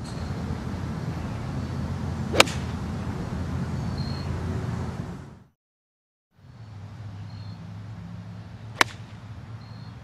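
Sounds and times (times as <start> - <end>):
low outdoor rumble: 0.0 - 5.5
golf club striking ball: 2.3 - 2.8, 8.8 - 9.2.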